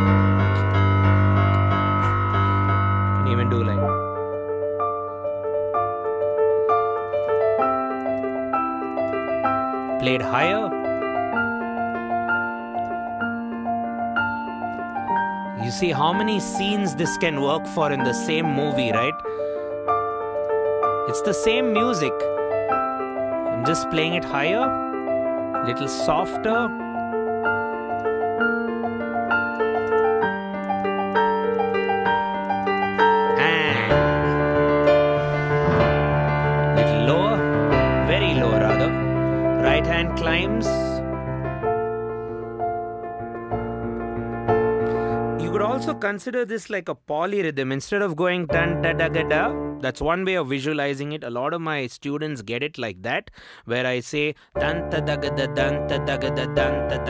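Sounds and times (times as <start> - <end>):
piano melody on digital keyboard: 0.0 - 51.9, 54.5 - 57.0.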